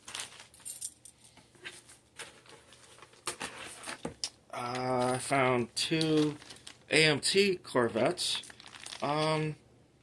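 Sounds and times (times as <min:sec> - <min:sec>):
plastic bag rustling: 0:00.0 - 0:00.6, 0:06.0 - 0:07.0, 0:08.3 - 0:09.5
plastic parts clinking: 0:05.9 - 0:06.9, 0:08.4 - 0:09.5.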